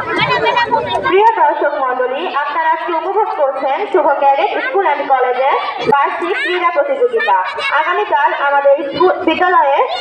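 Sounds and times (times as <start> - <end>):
background chatter: 0.0 - 10.0
people talking close by: 0.0 - 10.0.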